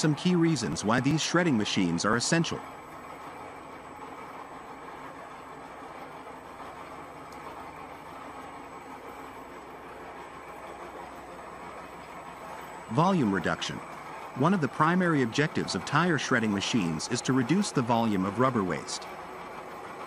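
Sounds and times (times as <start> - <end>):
tyre shredding machine drone: 0.0 - 20.0.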